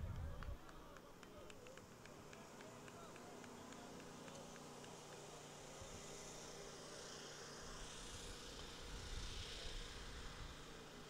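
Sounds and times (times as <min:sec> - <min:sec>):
low steady hiss: 0:00.5 - 0:11.0.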